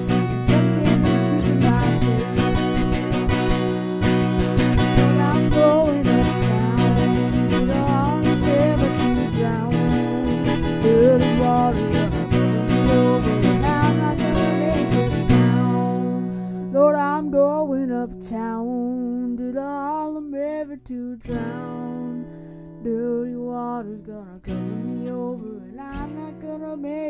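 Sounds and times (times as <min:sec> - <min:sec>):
acoustic guitar strumming: 0:00.0 - 0:27.0
person singing: 0:00.0 - 0:27.0.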